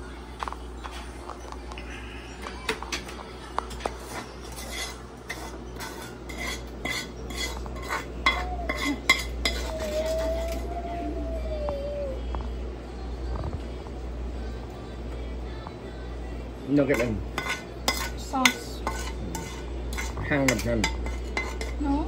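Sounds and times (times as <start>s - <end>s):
utensil scraping a frying pan: 3.9s - 10.6s, 16.9s - 22.0s.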